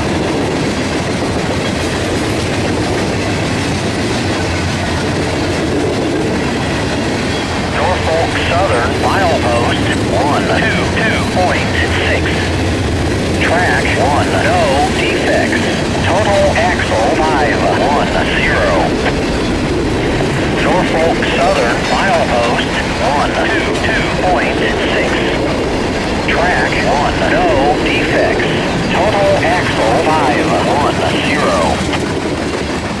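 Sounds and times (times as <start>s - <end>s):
train wheels rumbling on rails: 0.0s - 33.0s.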